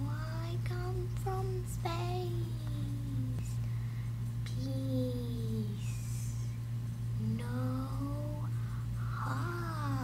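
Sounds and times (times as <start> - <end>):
girl's wordless sing-song voice: 0.0 - 6.6, 7.2 - 10.0
steady low hum: 0.0 - 10.0.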